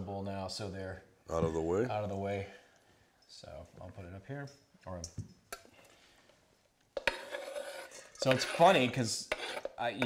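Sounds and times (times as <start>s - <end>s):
knife scraping cutting board: 7.0s - 10.0s.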